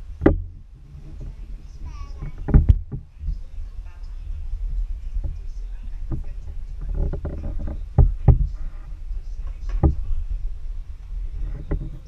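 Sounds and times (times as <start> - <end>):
heavy thumps: 0.0 - 12.0
camera handling rumble and knocking: 0.2 - 3.6, 5.1 - 10.2, 11.3 - 12.0.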